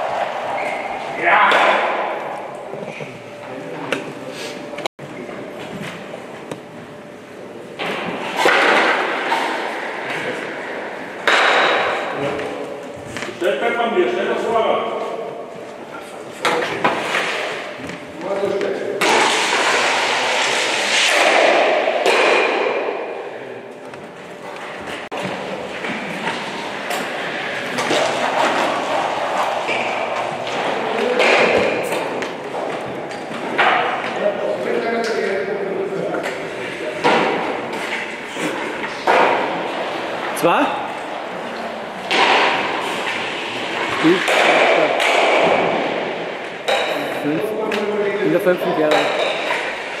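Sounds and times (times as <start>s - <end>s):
people talking in a large hall: 0.0s - 50.0s.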